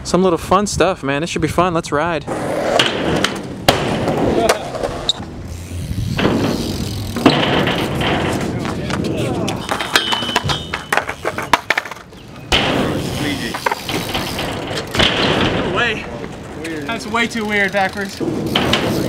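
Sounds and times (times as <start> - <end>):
bike tyres rolling over concrete: 2.3 - 19.0
skateboard wheels clattering: 2.3 - 19.0
bike landing knocks: 2.8 - 4.7, 6.0 - 16.4, 18.2 - 19.0.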